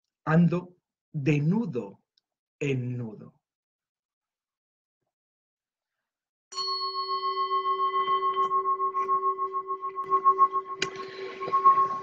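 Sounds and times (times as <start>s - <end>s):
singing bowl ringing: 6.5s - 12.0s.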